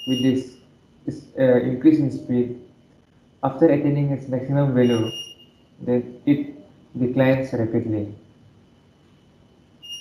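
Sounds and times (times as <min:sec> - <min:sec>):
high-pitched electronic beep: 0:00.0 - 0:00.7, 0:04.8 - 0:05.7, 0:09.8 - 0:10.0.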